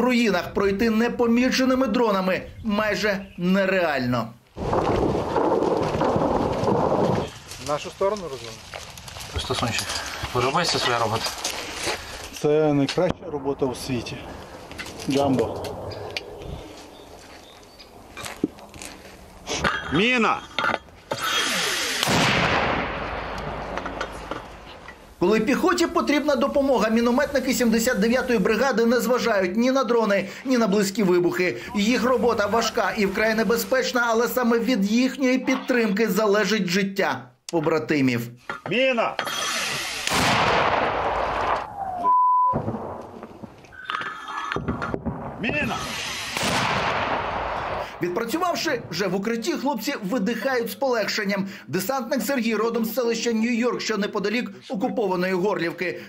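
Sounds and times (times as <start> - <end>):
mortar firing with rolling echo: 4.6 - 7.5, 13.0 - 16.8, 22.0 - 24.7, 40.0 - 41.8, 42.6 - 43.6, 44.6 - 49.2
steady electronic beep: 42.1 - 42.6.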